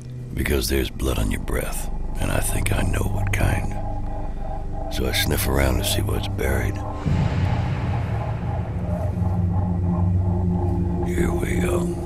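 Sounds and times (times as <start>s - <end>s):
droning film score music: 0.0s - 12.0s.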